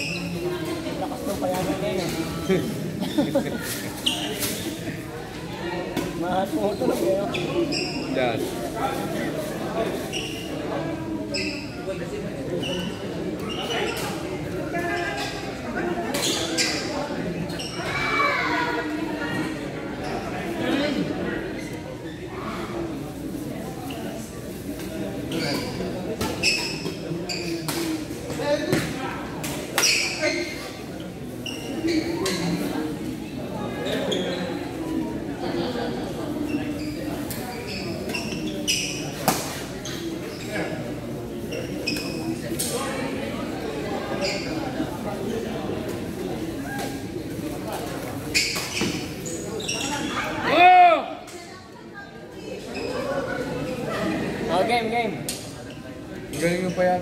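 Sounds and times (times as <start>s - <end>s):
sneaker squeaks on court floor: 0.0s - 0.5s, 3.8s - 4.9s, 6.4s - 8.2s, 10.0s - 10.6s, 11.2s - 11.9s, 16.1s - 18.0s, 25.2s - 29.0s, 29.8s - 32.8s, 33.8s - 34.8s, 36.4s - 42.7s, 44.1s - 44.7s, 48.0s - 50.4s
chatter of onlookers: 0.0s - 57.0s
spectators talking in echoing hall: 0.0s - 57.0s.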